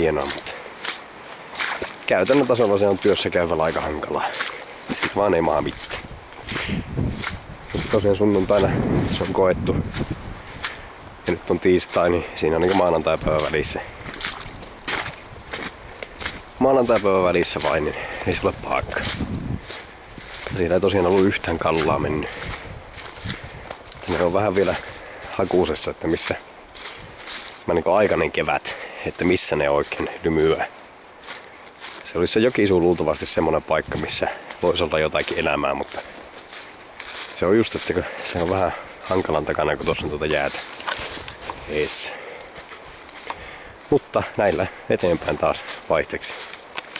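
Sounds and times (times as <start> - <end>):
footsteps on muddy path: 0.0 - 46.9.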